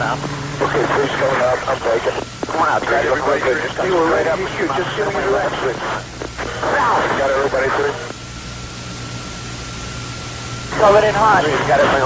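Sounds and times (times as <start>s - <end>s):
voice on radio: 0.0s - 8.1s, 10.7s - 12.0s
low hum: 0.0s - 12.0s
radio static hiss: 0.0s - 12.0s.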